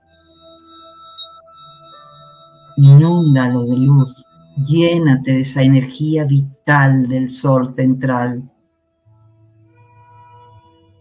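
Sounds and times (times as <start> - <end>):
ambient meditation music: 0.0 - 11.0.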